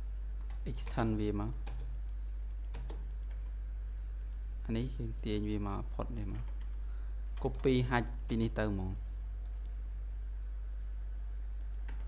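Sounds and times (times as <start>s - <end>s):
low electrical hum: 0.0s - 12.0s
computer keyboard key presses: 0.4s - 3.4s.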